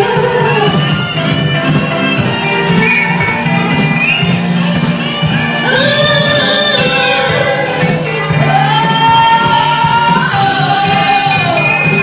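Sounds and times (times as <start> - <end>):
woman singing: 0.0 - 1.4, 5.5 - 12.0
instrumental accompaniment: 0.0 - 12.0.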